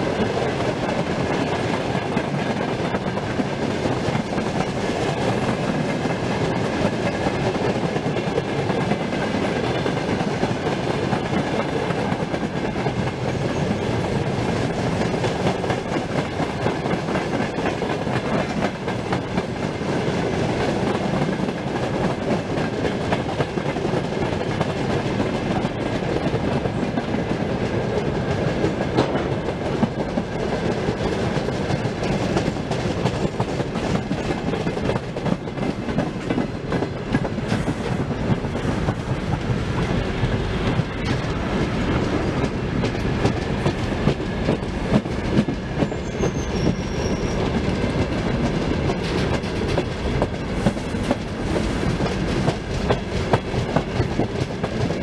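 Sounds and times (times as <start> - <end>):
freight train rumbling past: 0.0 - 55.0
wheels clicking over rail joints: 0.0 - 55.0.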